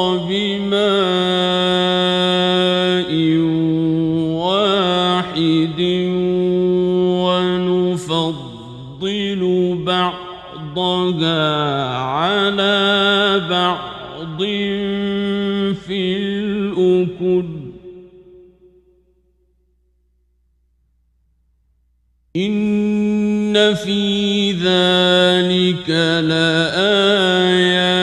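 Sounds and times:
man chanting melodically: 0.0 - 18.6, 22.4 - 28.0.

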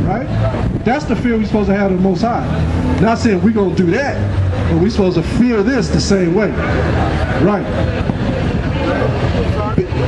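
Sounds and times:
faint voices: 0.0 - 10.0
street traffic rumbling: 0.0 - 10.0.

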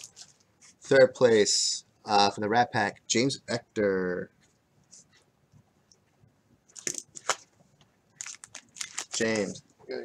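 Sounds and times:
plastic wrapper crinkling: 0.0 - 0.5, 6.7 - 9.6.

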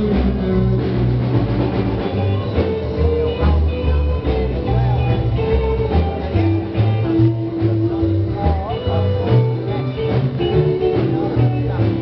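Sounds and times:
bass line: 0.0 - 12.0
live rock band playing: 0.0 - 12.0.

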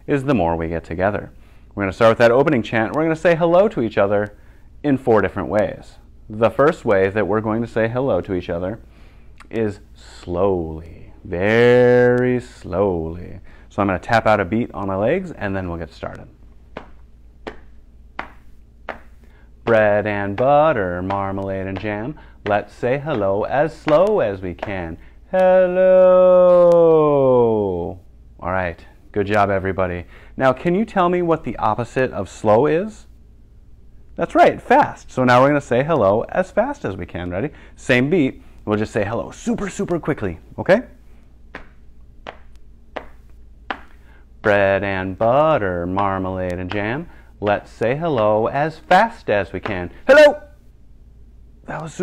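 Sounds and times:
hands patting on thighs: 16.0 - 25.7, 41.0 - 50.3.

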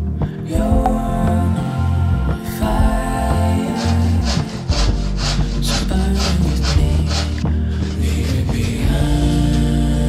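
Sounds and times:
handsaw cutting board: 3.7 - 8.8.

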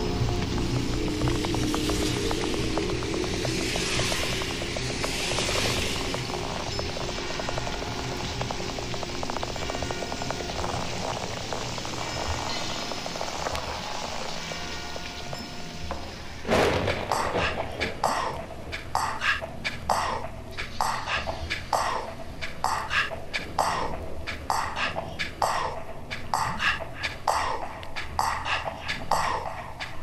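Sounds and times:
trance music: 0.0 - 15.9, 17.0 - 30.0
vinyl hiss: 0.0 - 30.0
sudden loud burst: 16.5 - 18.2.

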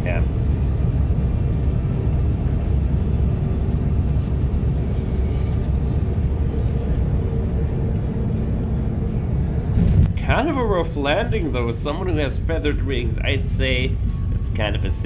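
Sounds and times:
airliner cabin rumble on landing: 0.0 - 15.0.

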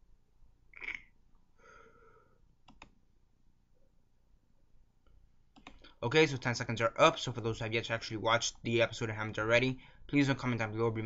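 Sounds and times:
faint clicks: 5.0 - 6.0.

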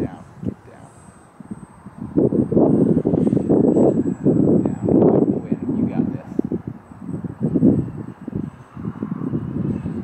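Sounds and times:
faint high-pitched whine: 0.0 - 10.0
wind buffeting microphone: 0.0 - 10.0.

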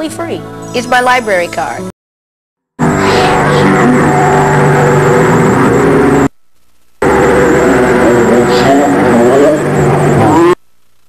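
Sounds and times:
distorted droning noise music: 2.8 - 11.0.

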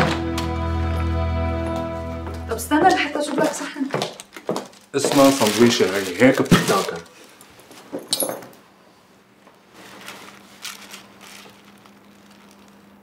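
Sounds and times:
plastic bag rustling: 3.2 - 8.0, 9.6 - 13.0.

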